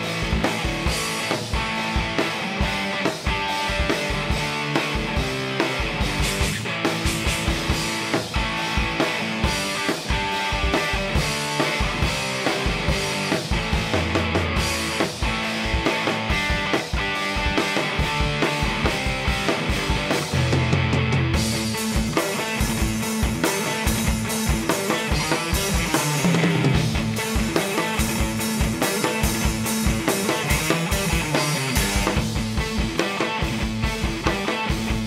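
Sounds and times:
heavy rock electric guitar riff: 0.0 - 35.0.

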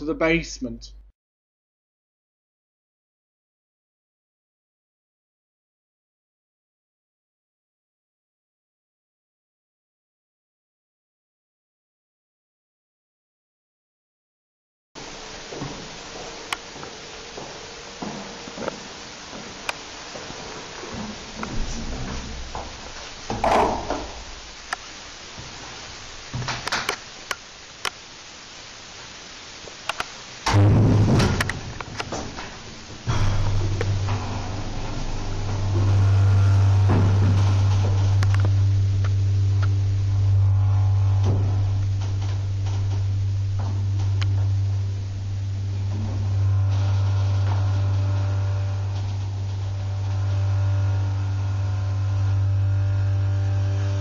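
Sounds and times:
deep electric hum of lift drive: 15.0 - 54.0.

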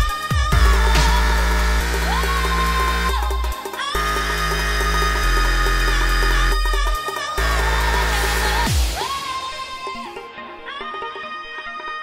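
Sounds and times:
deep sub-bass: 0.0 - 9.0.

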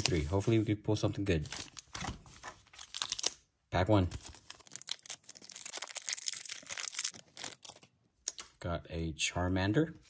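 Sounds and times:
foil wrapper tearing and crinkling: 2.8 - 3.4, 4.2 - 7.9.

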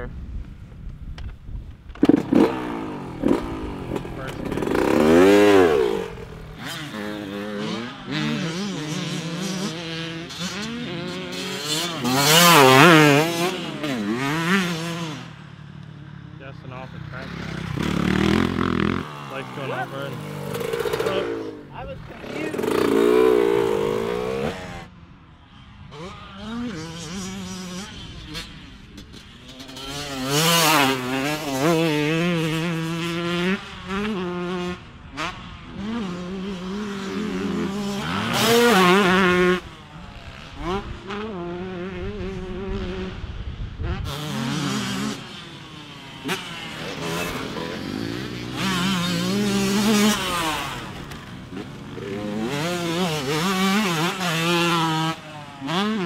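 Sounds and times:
dirt bike engines revving: 2.0 - 56.0.

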